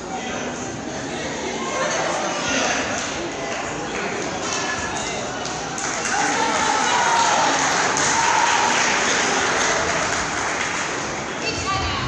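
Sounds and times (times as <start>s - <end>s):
crowd clapping and voices: 1.6s - 12.0s.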